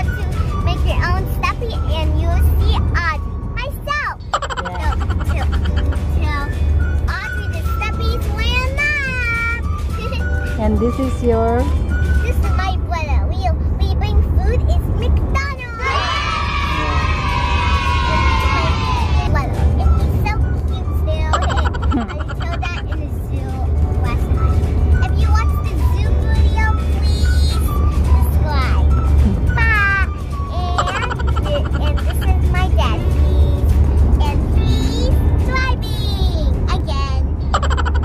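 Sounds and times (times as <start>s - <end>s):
car engine and road rumble: 0.0s - 38.0s
music: 0.0s - 38.0s
children's voices: 17.4s - 24.3s, 29.4s - 37.2s.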